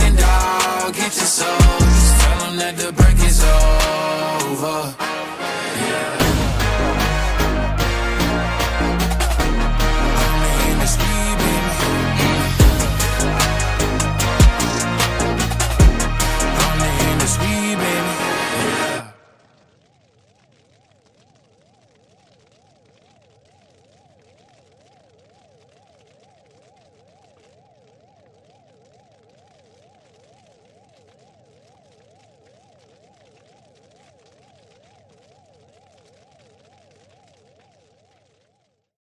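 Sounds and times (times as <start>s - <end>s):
low hiss: 0.0s - 38.9s
electronic warbling tones: 5.6s - 19.4s.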